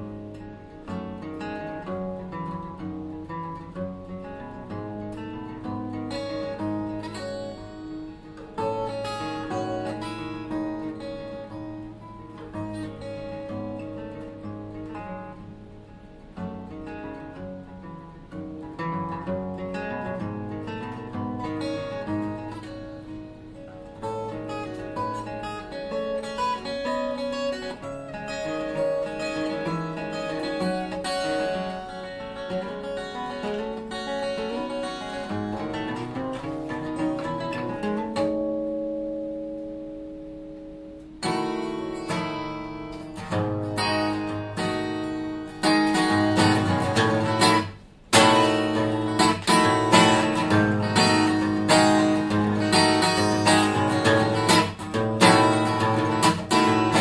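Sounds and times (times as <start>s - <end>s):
fingerstyle acoustic guitar: 0.0s - 57.0s.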